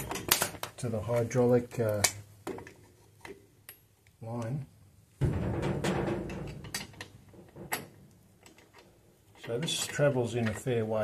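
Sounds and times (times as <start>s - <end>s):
low rumbling thud: 5.2s - 6.7s.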